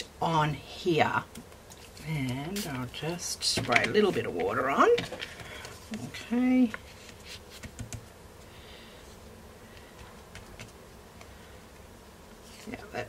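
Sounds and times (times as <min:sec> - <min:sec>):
faint steady hum: 0:00.0 - 0:13.0
paper rubbing: 0:06.7 - 0:08.0.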